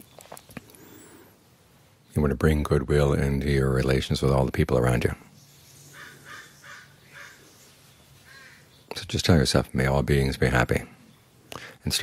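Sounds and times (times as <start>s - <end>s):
faint bird calls: 0.0s - 2.2s, 5.2s - 9.0s.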